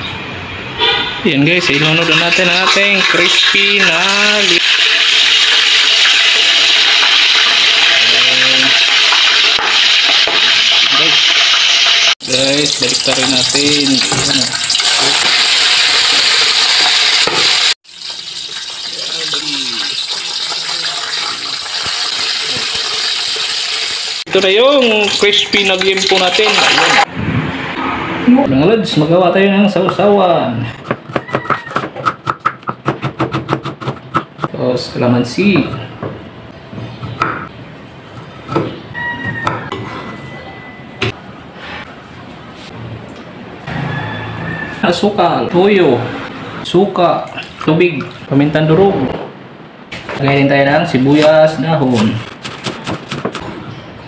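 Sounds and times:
meat deep-frying in hot oil: 0:01.6 - 0:27.1
thin high tone: 0:39.8 - 0:41.2.

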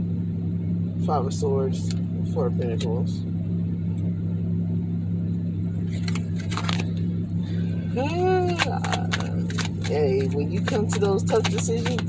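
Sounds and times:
car interior low hum: 0:00.0 - 0:12.0.

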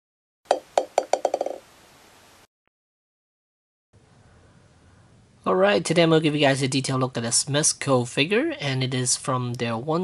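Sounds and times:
ball bouncing to rest: 0:00.5 - 0:01.6.

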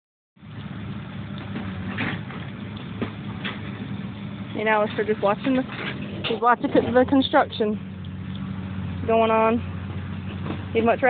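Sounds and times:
diesel engine running: 0:00.4 - 0:11.0.

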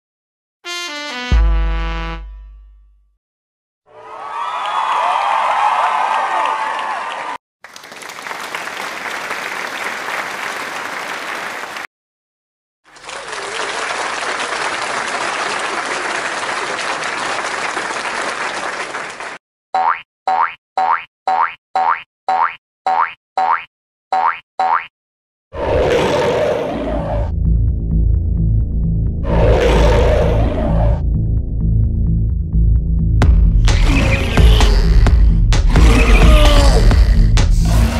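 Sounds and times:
crowd cheering and applauding: 0:03.9 - 0:11.9, 0:12.9 - 0:19.4
cartoon boing sounds: 0:19.8 - 0:24.9.

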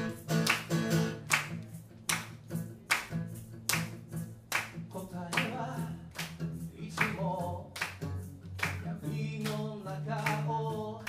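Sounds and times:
acoustic guitar strumming: 0:00.0 - 0:11.0
person singing: 0:08.6 - 0:11.0.

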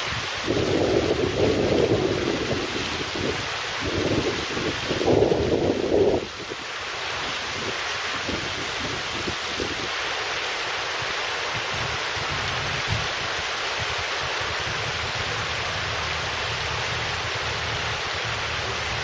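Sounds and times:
wind buffeting microphone: 0:00.0 - 0:10.0, 0:10.7 - 0:19.0
river water rushing over rocks: 0:00.0 - 0:19.0.

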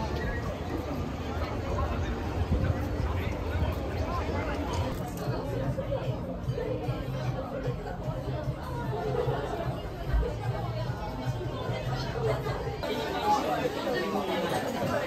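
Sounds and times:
indistinct chatter: 0:00.0 - 0:15.0.

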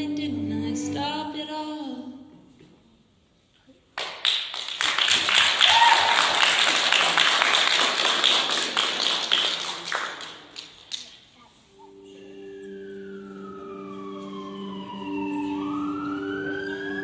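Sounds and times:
audience applause: 0:04.0 - 0:11.0.

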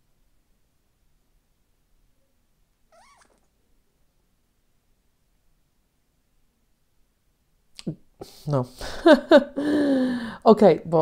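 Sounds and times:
cat meowing: 0:02.9 - 0:03.5.

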